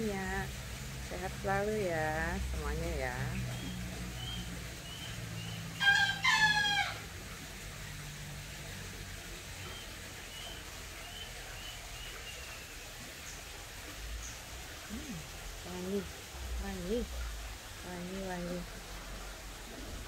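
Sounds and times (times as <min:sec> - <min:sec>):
rooster crowing: 0:05.8 - 0:07.1.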